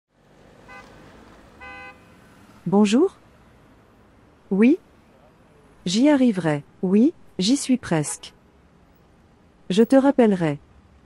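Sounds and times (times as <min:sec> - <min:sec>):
low traffic noise: 0:00.1 - 0:11.0
car horn toots: 0:00.7 - 0:00.9, 0:01.6 - 0:02.2.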